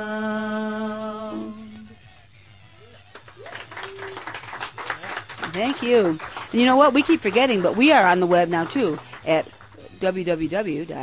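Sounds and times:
people clapping: 0:03.1 - 0:09.9.

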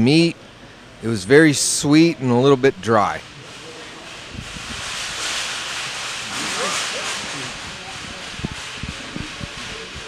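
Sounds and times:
room noise hiss: 0:00.0 - 0:10.0
faint voices: 0:00.8 - 0:10.0.

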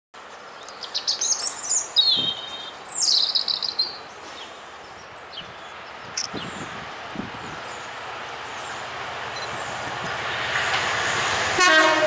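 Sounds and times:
faint outdoor background noise: 0:00.2 - 0:12.0
songbird chirping and trilling: 0:00.5 - 0:06.7.

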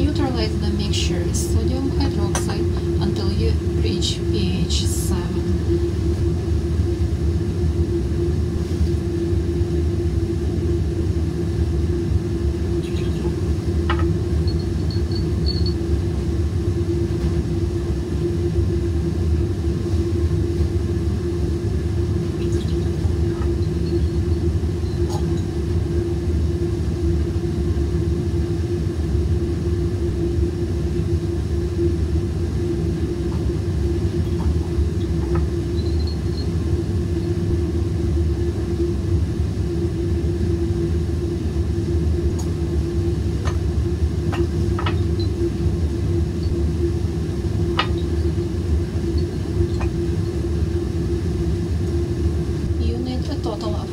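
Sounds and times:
constant hum: 0:00.0 - 0:53.9
fume hood ventilation rumble: 0:00.0 - 0:53.9.

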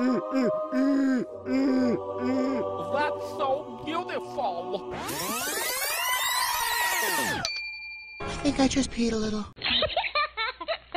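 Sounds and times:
overlapping tones sweeping: 0:00.0 - 0:07.5
steady high tone: 0:00.0 - 0:08.1.

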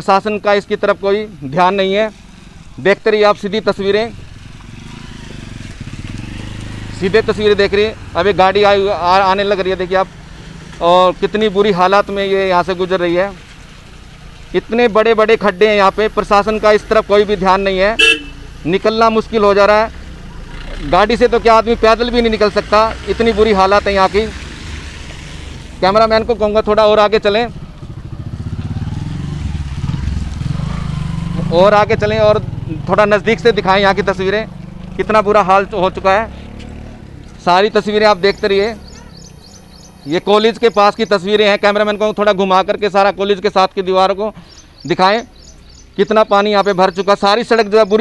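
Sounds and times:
motorcycle engine puttering: 0:03.7 - 0:14.9, 0:24.1 - 0:41.3.

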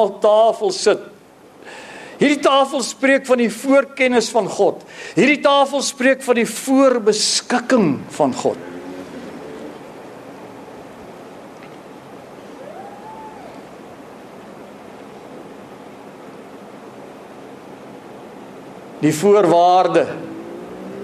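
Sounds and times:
recording hiss: 0:00.0 - 0:21.0
faint rising and falling tone: 0:12.4 - 0:13.9, 0:20.0 - 0:21.0.

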